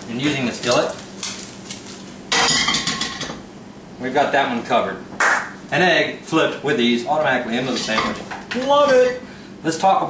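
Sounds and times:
egg sizzling in skillet: 0.9 - 2.4.

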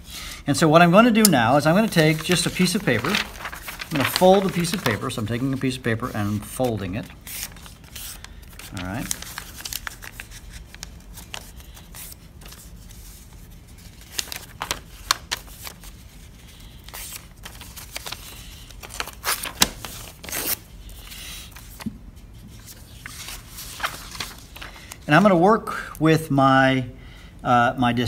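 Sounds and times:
paper folding and creasing: 0.9 - 25.2.

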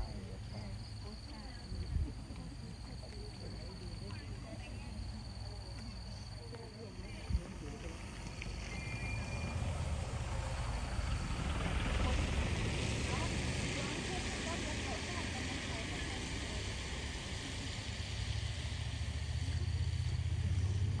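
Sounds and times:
vehicle engine idling: 0.0 - 21.0.

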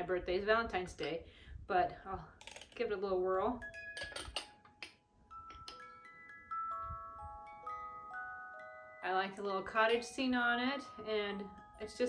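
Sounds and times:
music box playing a slow melody: 3.6 - 12.0.

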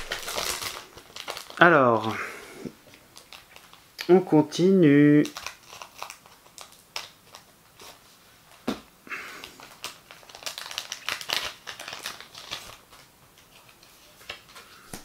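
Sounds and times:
foil wrapper crinkling: 0.0 - 2.3, 2.9 - 4.1, 4.9 - 8.0, 9.2 - 15.0.

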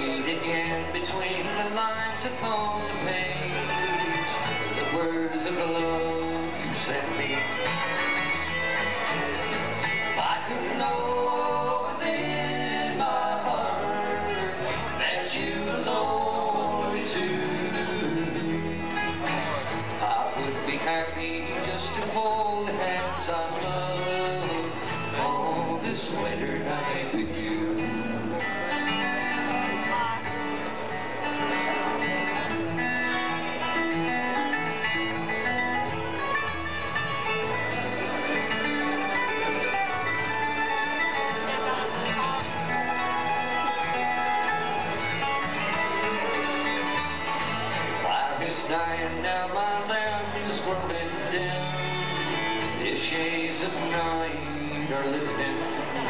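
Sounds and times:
acoustic guitars: 0.0 - 56.0
fiddle: 0.0 - 56.0
mandolin: 0.0 - 56.0.

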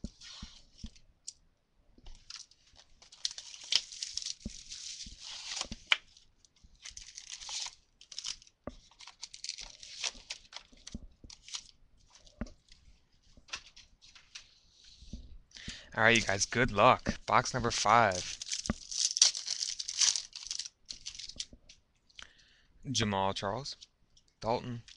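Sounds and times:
card packs handled: 2.1 - 6.2, 6.8 - 12.8, 16.0 - 21.5
plastic wrapping tearing and crinkling: 2.2 - 6.2, 6.8 - 12.8, 16.1 - 21.5.

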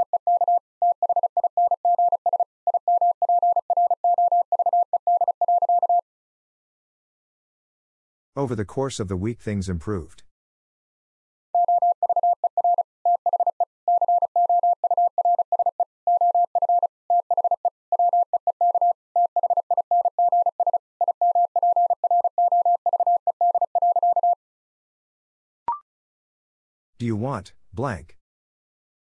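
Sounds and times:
morse code beeps: 0.0 - 6.0, 11.6 - 24.4.

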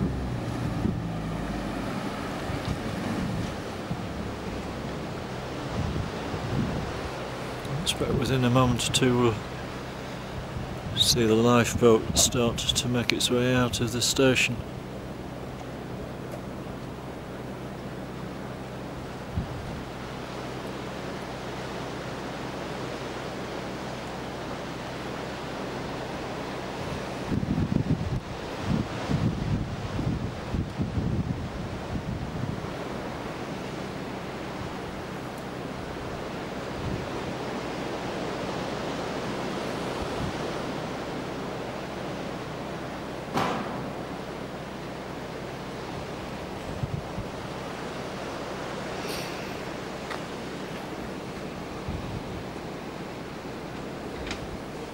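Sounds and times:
wind buffeting microphone: 0.0 - 12.8, 19.1 - 20.0, 26.8 - 33.2, 35.9 - 37.4, 39.9 - 40.6, 43.4 - 47.7, 50.8 - 53.0
sea surf washing on shore: 0.0 - 54.9.

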